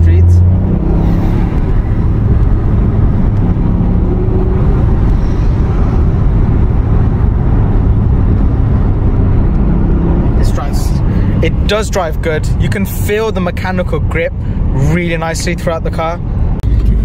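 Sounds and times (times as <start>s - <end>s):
car engine running: 0.0s - 17.0s
road and tyre noise: 0.0s - 17.0s.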